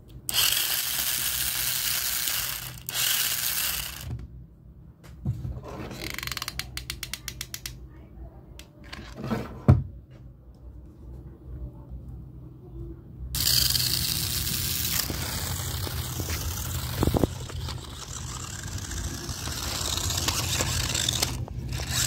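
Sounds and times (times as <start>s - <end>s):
toy motors whirring: 0.2s - 4.2s, 6.0s - 7.8s, 13.4s - 22.0s
gears clicking rapidly: 0.3s - 4.1s, 13.4s - 22.0s.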